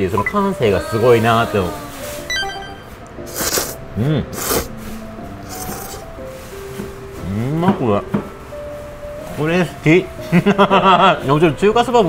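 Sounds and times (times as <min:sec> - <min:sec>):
slurping noodles: 0:03.2 - 0:04.8, 0:05.4 - 0:06.1.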